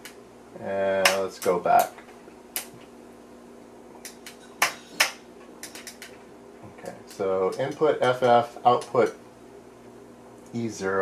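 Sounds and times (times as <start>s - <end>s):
low computer hum: 0.0s - 11.0s.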